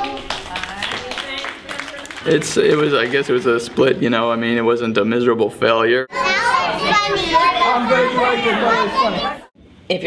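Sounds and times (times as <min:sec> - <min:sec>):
child speaking: 0:06.1 - 0:09.5
children chattering and calling out: 0:06.1 - 0:09.5.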